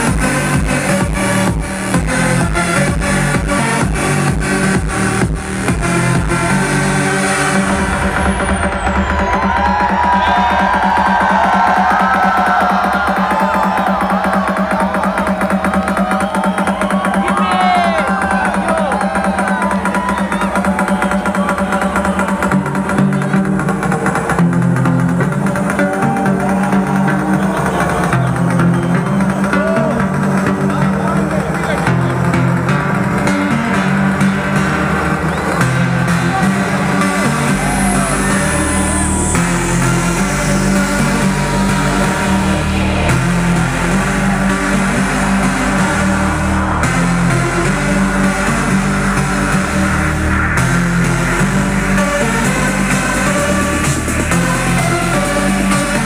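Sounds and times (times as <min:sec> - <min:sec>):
electronic dance music: 0:00.0 - 0:56.0.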